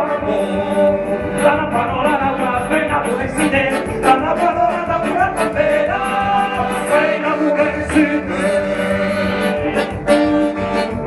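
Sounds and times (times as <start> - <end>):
accordion: 0.0 - 11.0
person singing: 0.0 - 11.0.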